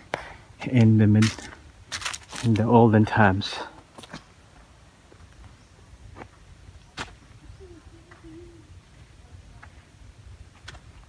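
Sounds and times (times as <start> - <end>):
wavering bird hoot: 7.3 - 8.9.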